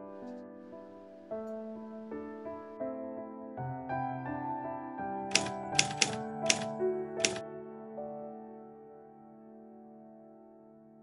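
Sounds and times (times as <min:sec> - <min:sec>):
soft piano music: 0:00.0 - 0:11.0
typewriter key clacks: 0:05.3 - 0:07.4.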